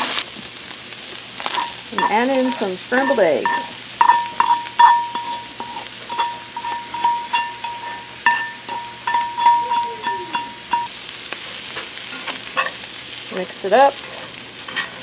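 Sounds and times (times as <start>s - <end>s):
food sizzling in a skillet: 0.0s - 15.0s
fork scraping and tapping skillet: 1.4s - 10.9s, 11.7s - 12.9s, 14.0s - 15.0s.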